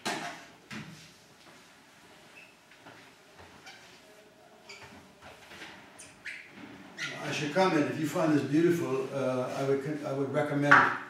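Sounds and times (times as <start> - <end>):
chalk squeak: 6.0 - 7.3.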